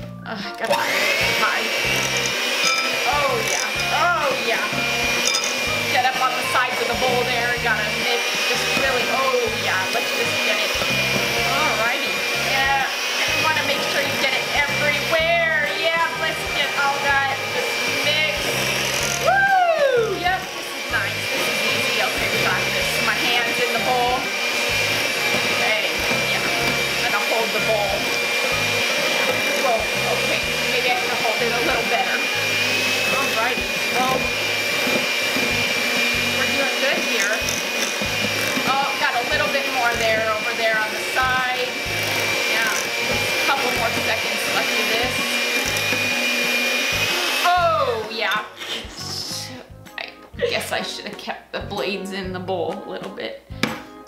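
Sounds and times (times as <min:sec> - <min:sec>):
electric hand mixer whining: 0:00.0 - 0:49.8, 0:50.4 - 0:51.0.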